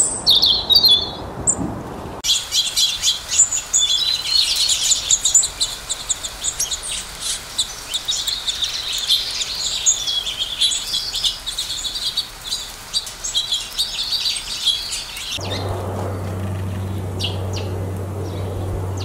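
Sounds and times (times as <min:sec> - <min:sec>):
songbirds chirping: 0:00.0 - 0:19.0.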